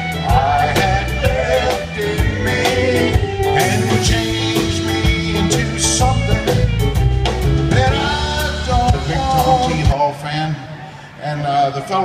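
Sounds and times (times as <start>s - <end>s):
drums keeping a beat: 0.0s - 10.0s
country band playing: 0.0s - 12.0s.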